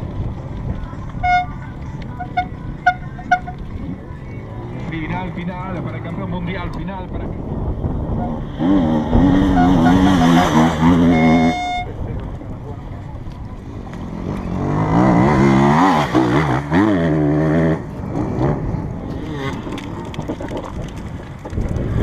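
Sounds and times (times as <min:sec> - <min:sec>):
horn toots: 0:01.2 - 0:01.6, 0:02.2 - 0:03.7, 0:08.1 - 0:12.0
motorcycle engines racing past: 0:02.0 - 0:12.8, 0:13.6 - 0:22.0.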